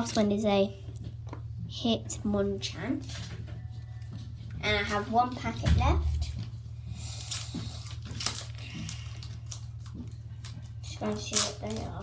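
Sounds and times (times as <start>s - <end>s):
steady low hum: 0.0s - 12.0s
foil wrapper crinkling: 7.0s - 12.0s.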